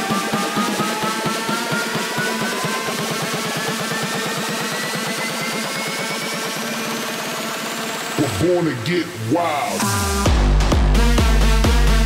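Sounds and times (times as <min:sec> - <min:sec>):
rising noise riser: 0:00.0 - 0:11.1.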